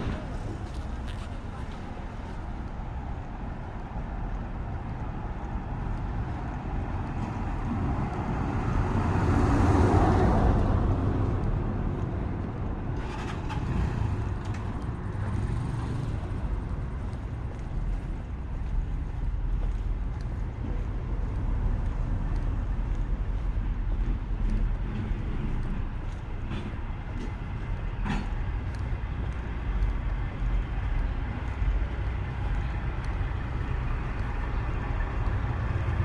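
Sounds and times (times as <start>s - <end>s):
low traffic rumble: 0.0s - 36.0s
smaller passing vehicle: 0.0s - 36.0s
vehicle driving past: 8.2s - 17.6s.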